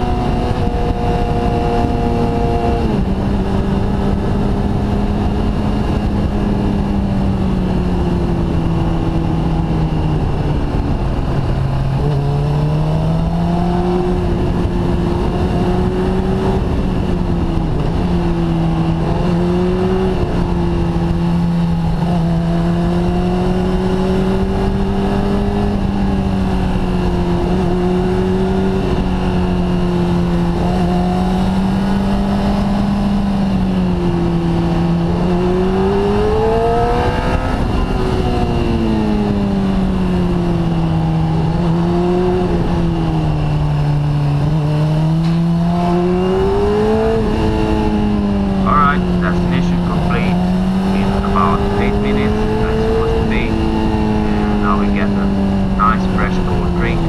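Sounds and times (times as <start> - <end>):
motorcycle engine revving: 0.0 - 57.0
steady rushing noise: 48.6 - 57.0.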